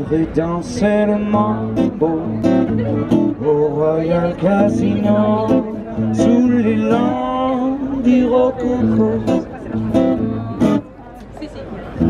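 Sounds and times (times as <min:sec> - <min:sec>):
acoustic guitar strumming: 0:00.0 - 0:10.9.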